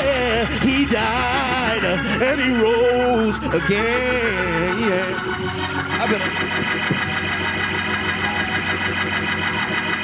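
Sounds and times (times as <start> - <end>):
organ playing held chords: 0.0 - 10.0.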